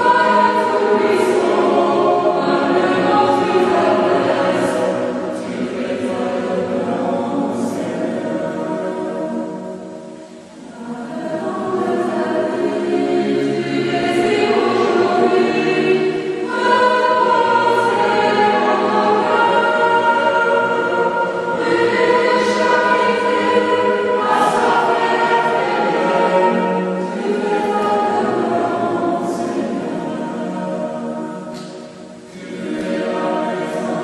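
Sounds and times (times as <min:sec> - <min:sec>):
choir singing a hymn: 0:00.0 - 0:34.0.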